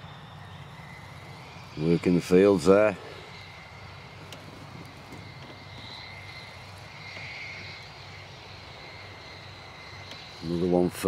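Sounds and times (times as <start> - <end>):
tractor engine drone: 0.0 - 11.0.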